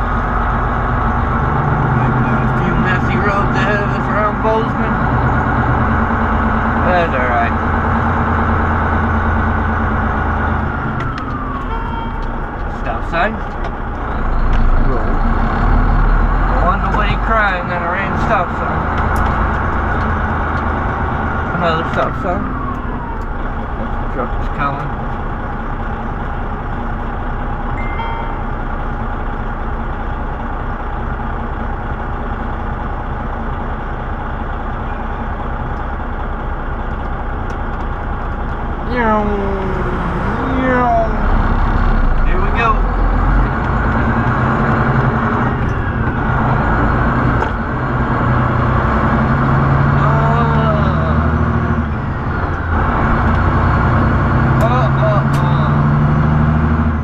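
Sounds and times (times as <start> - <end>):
truck diesel engine: 0.0 - 57.0.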